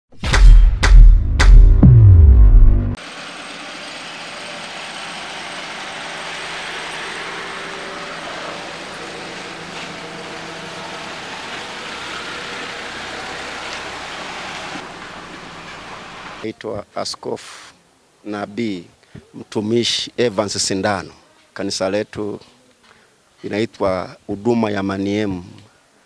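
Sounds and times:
vehicles driving on dirt road: 3.0 - 16.5.

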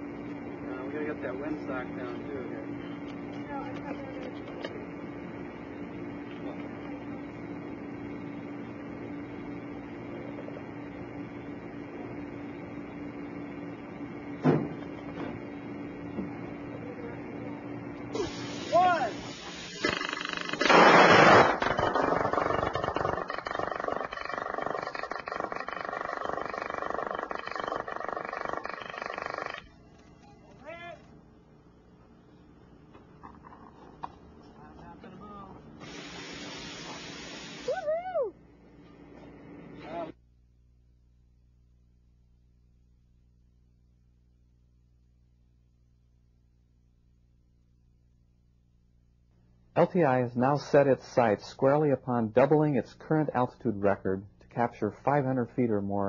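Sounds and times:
steady low hum: 0.0 - 56.0
harsh rapid plasma buzz: 18.1 - 29.8, 35.8 - 37.7.

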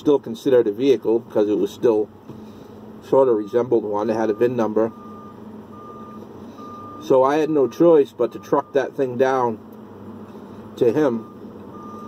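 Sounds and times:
truck cab running noise: 0.0 - 12.0.

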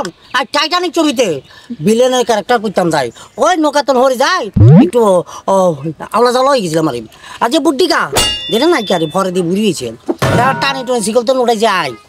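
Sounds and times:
ringing metallic clang: 8.2 - 9.2, 10.3 - 11.2.

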